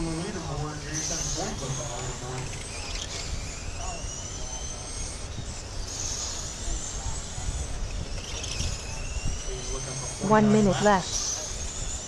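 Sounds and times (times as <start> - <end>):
rc car motors whining: 0.0 - 12.0.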